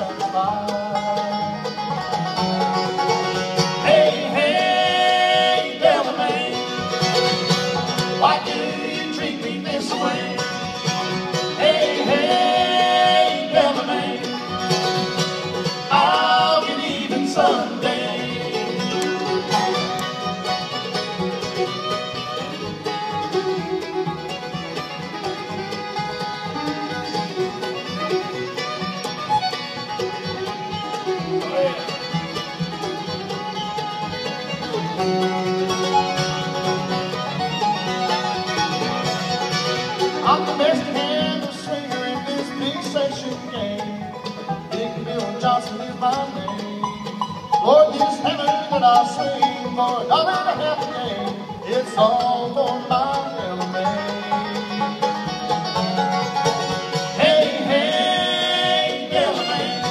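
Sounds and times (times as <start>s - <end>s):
bluegrass band playing: 0.0s - 59.9s.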